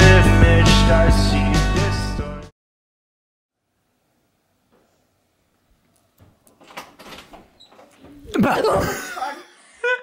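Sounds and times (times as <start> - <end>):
door clicks and knocks: 6.2 - 8.2
burst of laughter: 8.4 - 10.0.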